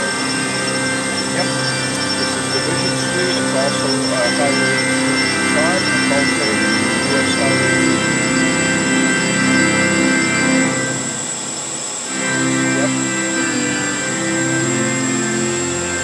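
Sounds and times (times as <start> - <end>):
person singing: 1.2 - 8.2.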